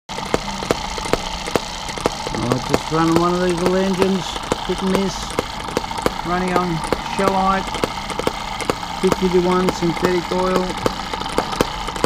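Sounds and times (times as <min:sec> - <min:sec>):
miniature engine firing pops: 0:00.1 - 0:12.0.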